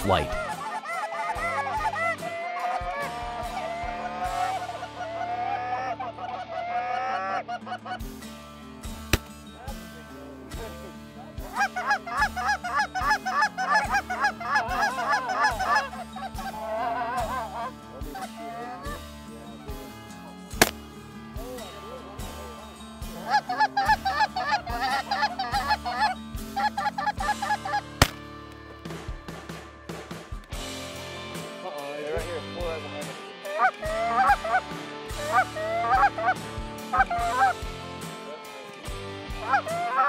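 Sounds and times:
geese honking: 0:00.0 - 0:07.9, 0:11.5 - 0:19.0, 0:23.1 - 0:28.2, 0:33.4 - 0:37.6, 0:39.4 - 0:40.0.

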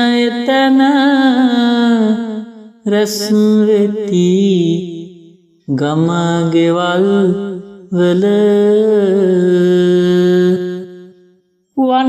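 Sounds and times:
person chanting a folk verse: 0:00.0 - 0:05.1, 0:05.7 - 0:11.0.

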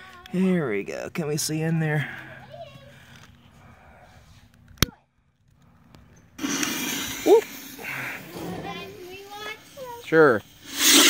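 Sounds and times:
firework fuse hissing: 0:06.4 - 0:11.0.

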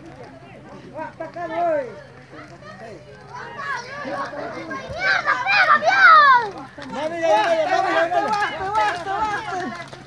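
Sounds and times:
children and onlookers shouting: 0:02.4 - 0:10.0
loud falling shout: 0:03.6 - 0:06.5.

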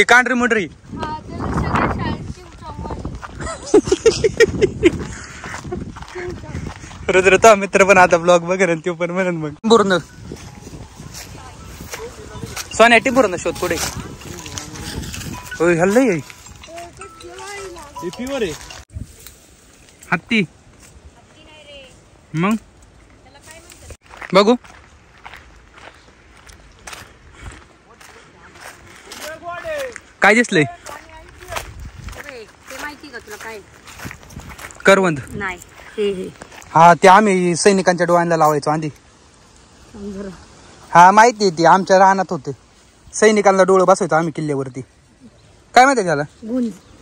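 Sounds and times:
footsteps crunching on dirt path: 0:00.6 - 0:08.3, 0:09.6 - 0:20.0, 0:20.6 - 0:38.6.

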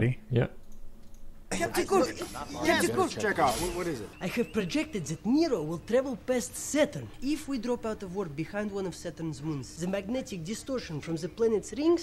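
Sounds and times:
voices talking: 0:01.5 - 0:12.0.

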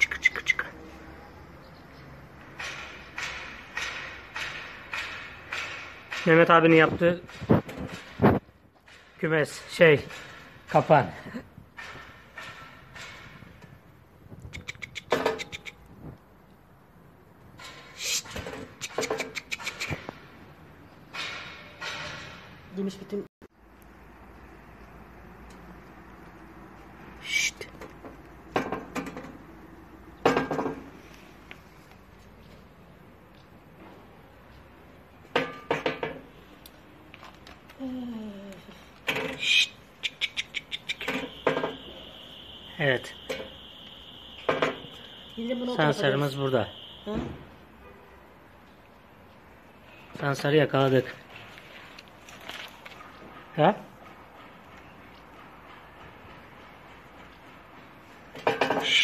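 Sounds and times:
marten clicking chatters: 0:00.0 - 0:00.8, 0:14.4 - 0:16.0, 0:18.0 - 0:20.1, 0:27.1 - 0:28.0, 0:39.2 - 0:42.0
marten hissing and chattering: 0:27.2 - 0:27.7.

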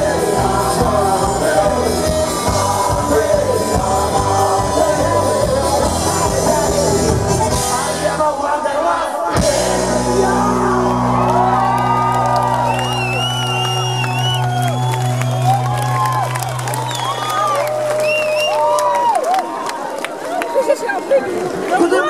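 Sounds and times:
rock band sustained chord: 0:00.0 - 0:08.2, 0:09.4 - 0:16.7
crowd shouting and whooping: 0:00.0 - 0:22.0.

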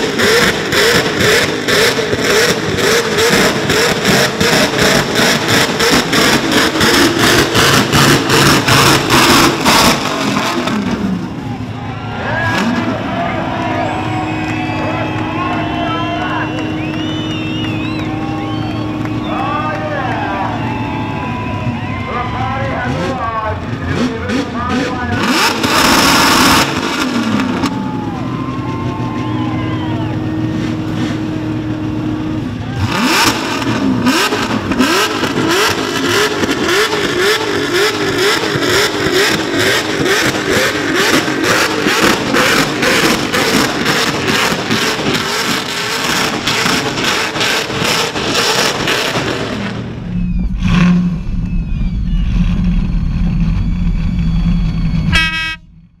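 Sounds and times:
truck engine revving in burnout: 0:00.0 - 0:55.6
low engine note: 0:00.0 - 0:56.0.

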